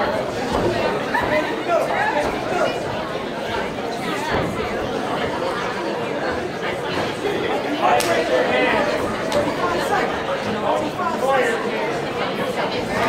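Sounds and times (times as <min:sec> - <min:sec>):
spectators talking and calling out: 0:00.0 - 0:13.0.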